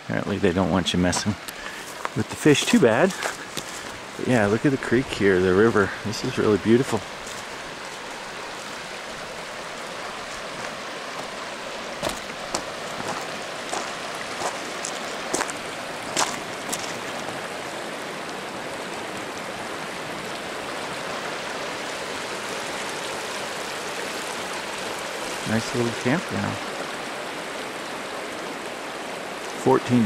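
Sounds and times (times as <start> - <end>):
river rushing over rocks: 0.0 - 30.0.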